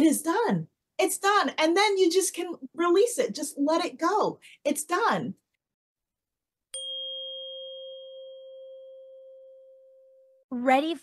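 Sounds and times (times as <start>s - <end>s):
struck chime ringing: 6.8s - 10.5s.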